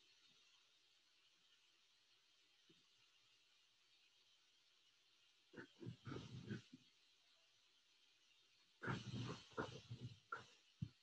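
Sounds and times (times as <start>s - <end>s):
pen strokes on paper: 8.8s - 11.0s.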